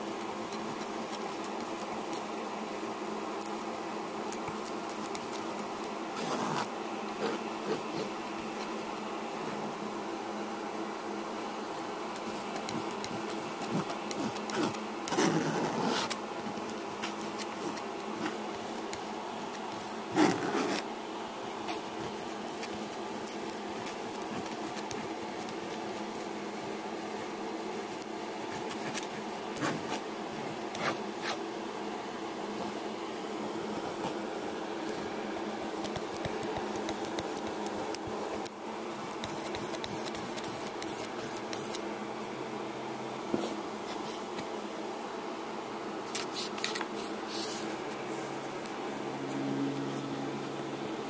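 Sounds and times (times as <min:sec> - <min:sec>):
background hum: 0:00.0 - 0:51.0
palette knife scraping canvas: 0:12.6 - 0:16.2, 0:19.5 - 0:20.9, 0:30.6 - 0:31.4.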